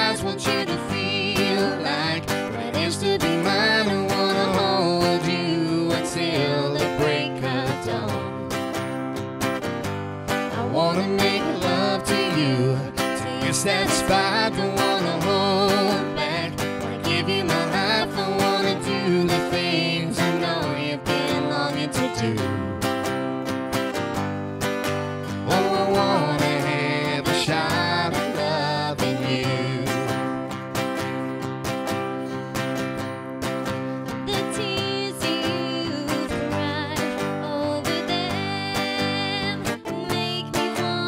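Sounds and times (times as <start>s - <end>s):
woman singing: 0.0s - 8.6s, 10.5s - 22.5s, 25.5s - 30.2s, 34.1s - 41.0s
acoustic guitar strumming: 0.0s - 41.0s.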